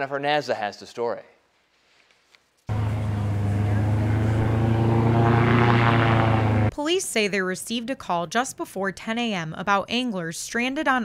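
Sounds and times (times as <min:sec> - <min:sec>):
airboat engine and propeller: 0:02.7 - 0:06.7.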